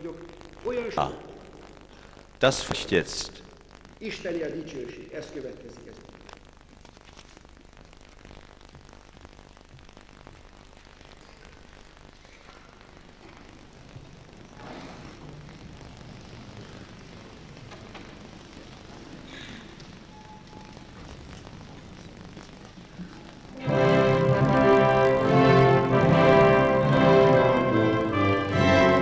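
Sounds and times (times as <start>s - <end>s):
steady hall hum: 0.0s - 29.0s
faint audience stirring: 12.2s - 29.0s.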